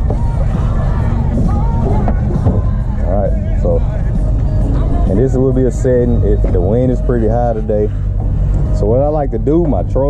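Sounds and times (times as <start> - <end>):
boat motor rumble: 0.0 - 10.0.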